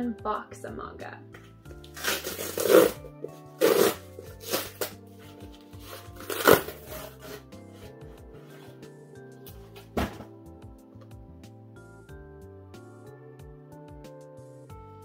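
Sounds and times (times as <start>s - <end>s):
background music: 0.0s - 15.0s
cardboard mailer tearing open: 1.9s - 5.0s, 5.8s - 7.5s.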